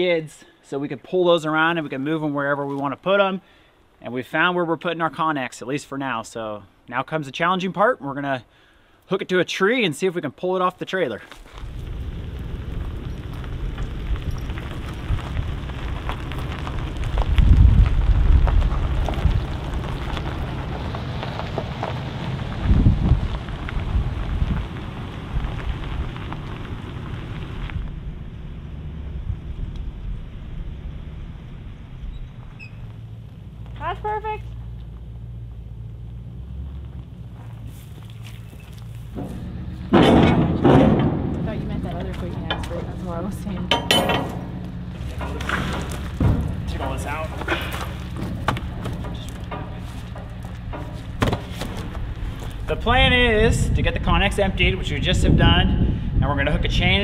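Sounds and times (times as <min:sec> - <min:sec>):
pickup engine running: 0:11.3 - 0:56.2
sharp knocks and clatter: 0:39.0 - 0:52.7.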